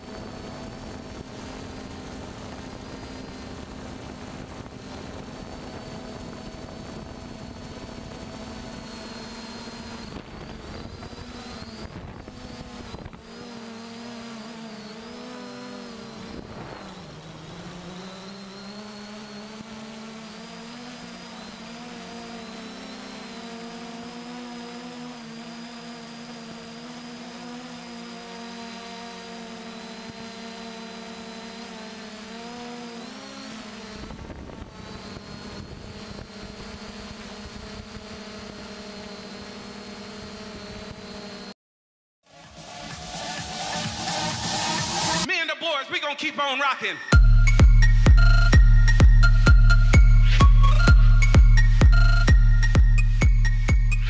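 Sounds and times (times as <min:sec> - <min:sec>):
drone propellers humming: 0:00.0 - 0:41.5, 0:42.3 - 0:45.3, 0:47.0 - 0:54.0
wind rumble on microphone: 0:09.9 - 0:13.2, 0:34.0 - 0:38.1.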